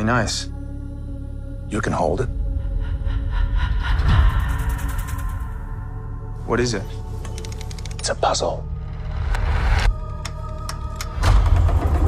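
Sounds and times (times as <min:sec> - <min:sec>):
sharp clicks: 0:07.2 - 0:08.2.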